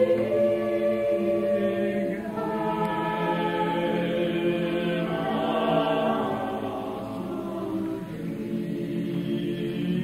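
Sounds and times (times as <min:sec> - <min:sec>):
choir singing sustained chords: 0:00.0 - 0:10.0.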